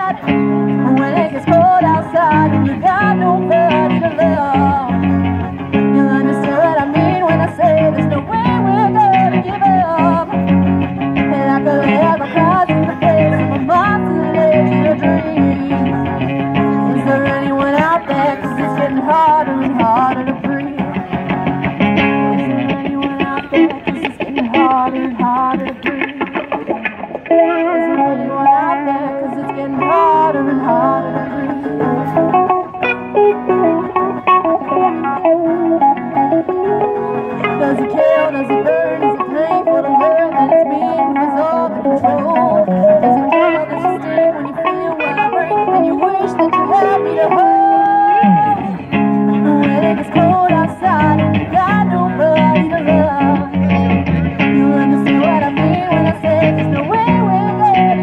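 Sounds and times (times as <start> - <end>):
electric guitar lead: 0.0 - 58.0
live band playing: 0.0 - 58.0
person shouting woo: 46.9 - 48.7.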